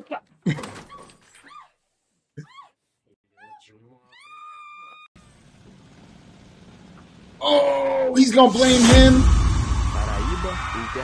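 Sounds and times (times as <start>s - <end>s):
high-pitched vocal cries: 2.4s - 5.1s.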